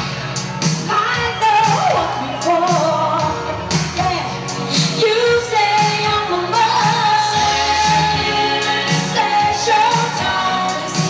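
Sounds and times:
band playing: 0:00.0 - 0:11.0
woman singing: 0:00.8 - 0:11.0.

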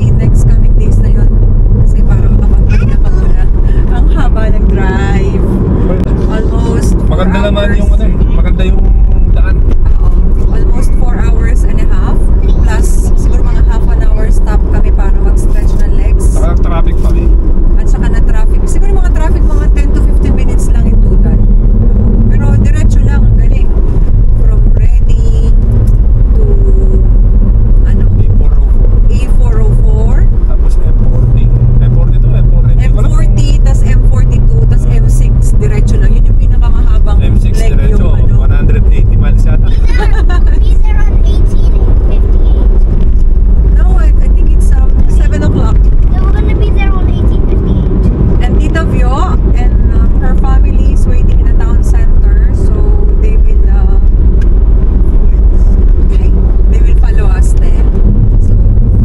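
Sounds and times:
car tyres and engine rumble: 0:00.0 - 0:59.0
people talking indistinctly: 0:00.0 - 0:59.0.

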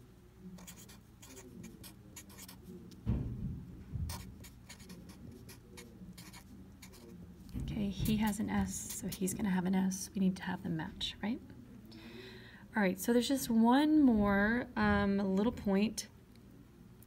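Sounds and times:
pen scratching on paper: 0:00.6 - 0:02.7, 0:04.1 - 0:07.1
soft thump: 0:03.0 - 0:04.3.

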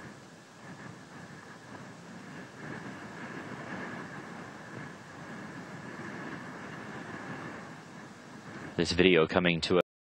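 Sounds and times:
faint high hum: 0:00.0 - 0:09.8.

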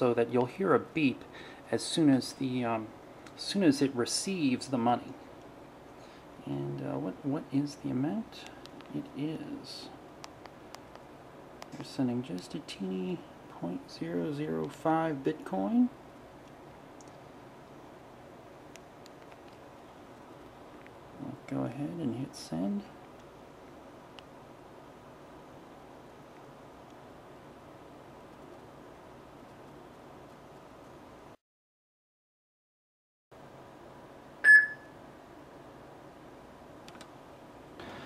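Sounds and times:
room hiss: 0:00.0 - 0:18.7, 0:19.8 - 0:31.4
short electronic beep: 0:34.4 - 0:35.0.

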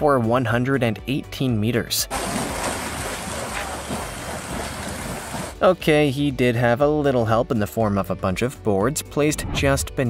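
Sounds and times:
water rushing and splashing: 0:02.1 - 0:05.6.

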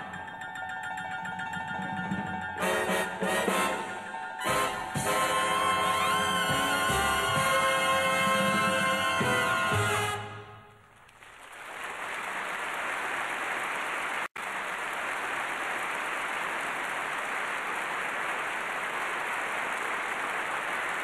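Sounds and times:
audience applauding: 0:02.0 - 0:21.0.

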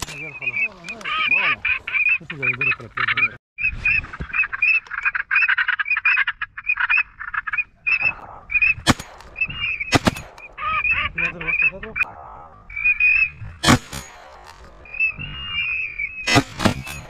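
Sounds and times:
ducks quacking: 0:00.0 - 0:13.7.

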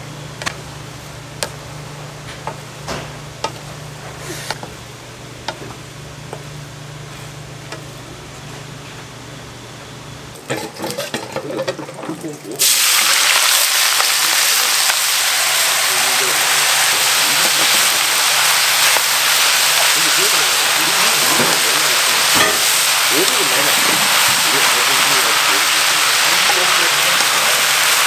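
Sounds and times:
greens sizzling in frying pan: 0:12.6 - 0:28.0.

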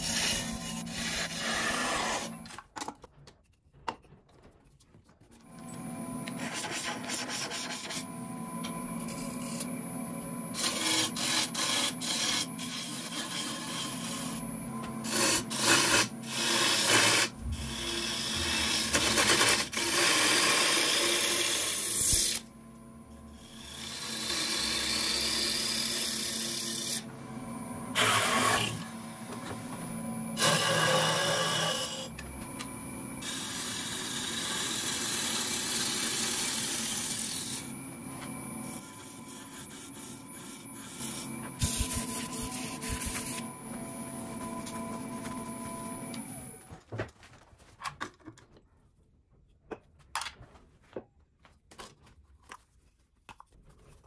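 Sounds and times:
gouge scraping spinning wood: 0:00.0 - 0:02.5, 0:06.3 - 0:08.1, 0:10.5 - 0:22.4, 0:23.4 - 0:27.1, 0:27.9 - 0:28.9, 0:30.4 - 0:32.1, 0:33.2 - 0:37.7, 0:38.7 - 0:43.4
wood lathe motor hum: 0:00.0 - 0:02.5, 0:05.5 - 0:46.6.

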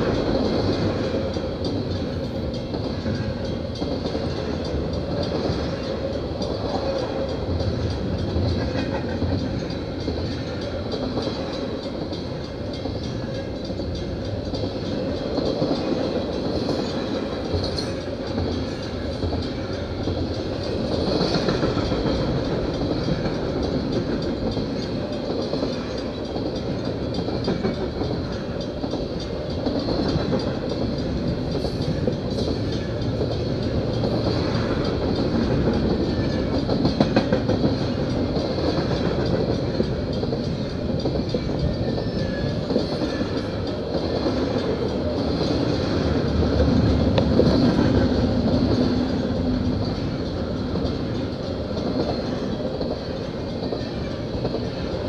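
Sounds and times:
clanks and clacks: 0:00.0 - 0:55.0
train wheels rumbling on rails: 0:00.0 - 0:55.0.

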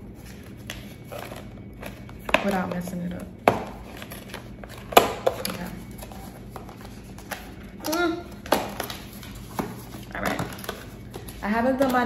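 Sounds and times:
packaging rustling: 0:03.7 - 0:12.0.

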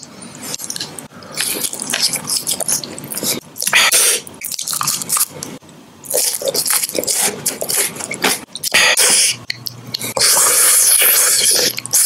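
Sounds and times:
wet mouth sounds: 0:00.3 - 0:12.0.

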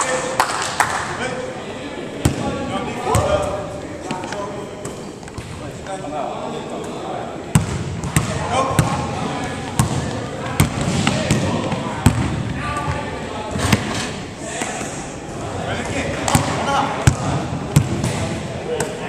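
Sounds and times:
basketballs bouncing on wooden floor: 0:07.5 - 0:09.0, 0:09.6 - 0:13.0, 0:16.3 - 0:18.3.

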